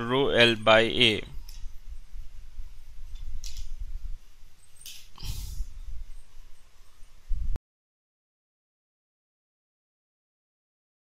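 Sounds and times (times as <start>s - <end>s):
person breathing: 5.2s - 5.8s
person sniffing: 5.2s - 5.8s.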